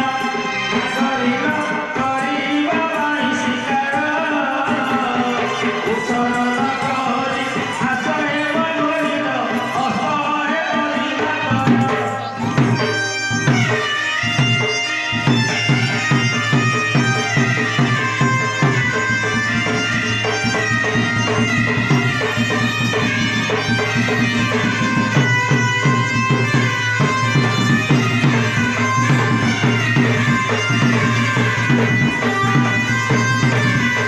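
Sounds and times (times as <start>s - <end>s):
drum beats: 0.0s - 34.0s
reedy double-reed pipe melody: 4.0s - 34.0s.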